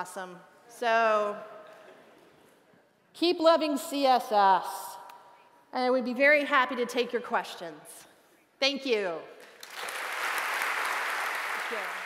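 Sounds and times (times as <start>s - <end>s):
audience applauding: 9.6s - 12.0s.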